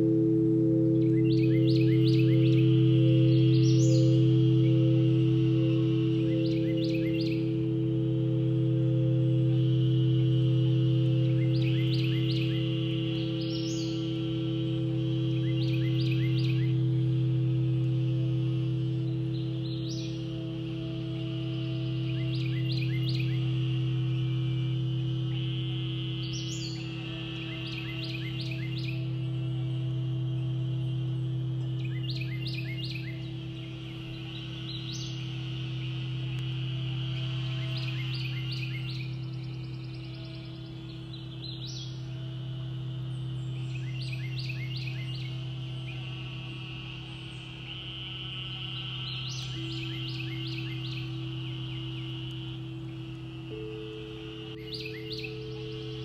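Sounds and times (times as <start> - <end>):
crystal singing bowls humming: 0.0 - 56.0.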